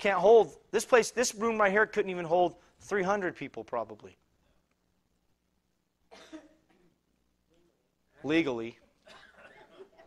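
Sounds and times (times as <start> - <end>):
person coughing: 6.1 - 6.9.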